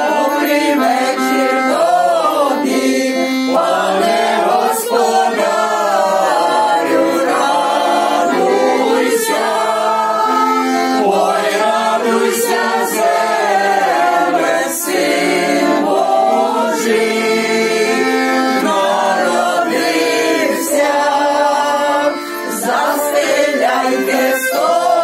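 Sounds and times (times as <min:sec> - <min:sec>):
button accordion: 0:00.0 - 0:25.0
women singing in unison: 0:00.0 - 0:25.0.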